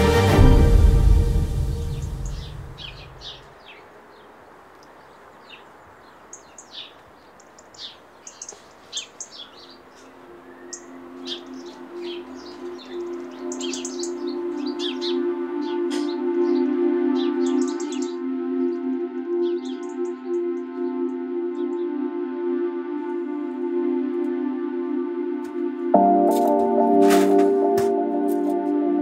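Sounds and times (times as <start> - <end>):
soft music with held notes: 0.0 - 3.5, 7.8 - 29.0
small birds chirping: 1.6 - 22.1.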